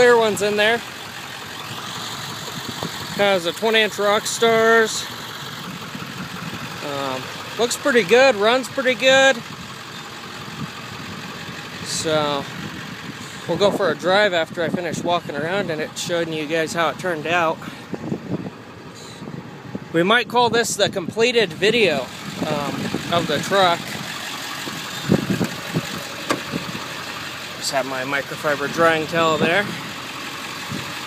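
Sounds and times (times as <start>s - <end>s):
diesel engine idling: 0.0s - 31.0s.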